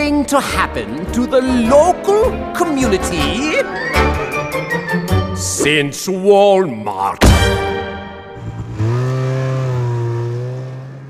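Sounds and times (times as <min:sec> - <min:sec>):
cartoon snowmobile engine droning: 0:08.2 - 0:11.0.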